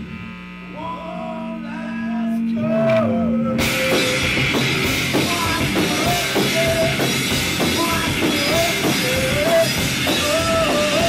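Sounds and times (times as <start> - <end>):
amplifier hum: 0.0 - 11.0
electric guitar and bass notes: 0.0 - 11.0.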